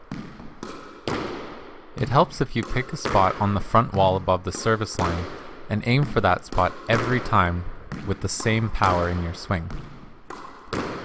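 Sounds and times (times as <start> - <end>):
squash ball impacts with echo: 0.0 - 11.0.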